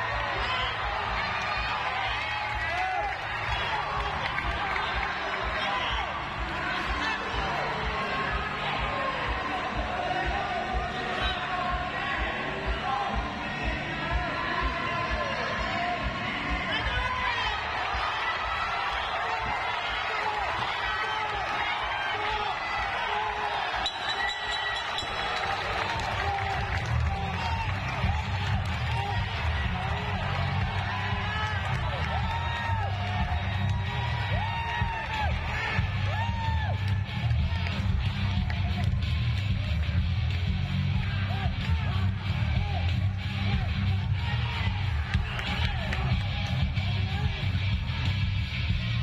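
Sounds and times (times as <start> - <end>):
crowd chatter: 0.0 - 49.0
music with heavy bass beat: 24.5 - 49.0.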